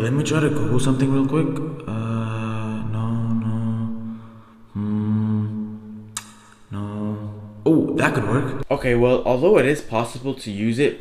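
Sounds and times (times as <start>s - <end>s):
man humming: 1.8s - 7.9s.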